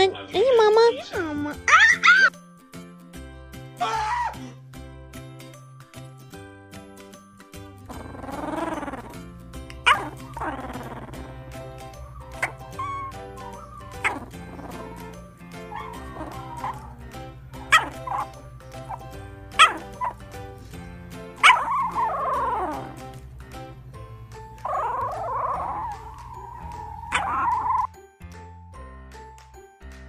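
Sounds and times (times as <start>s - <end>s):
background music: 0.0s - 30.0s
puppy yipping and whimpering: 1.6s - 2.4s, 7.9s - 9.2s, 9.8s - 20.3s, 21.4s - 23.0s, 24.6s - 27.9s.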